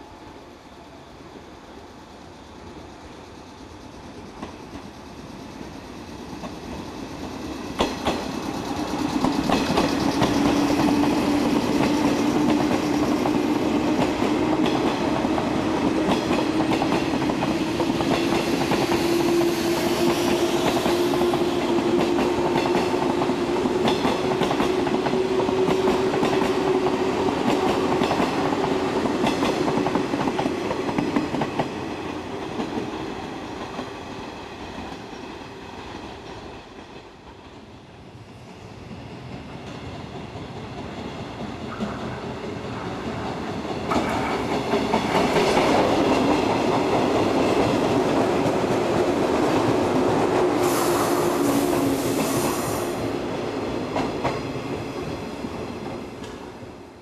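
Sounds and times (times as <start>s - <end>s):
train rumble: 1.5s - 57.0s.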